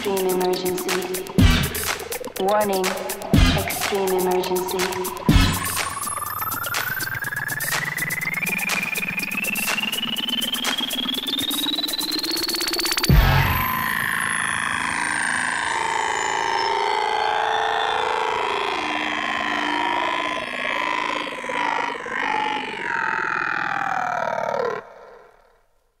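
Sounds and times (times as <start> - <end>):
wavering synthesizer drone: 0.0 - 25.6.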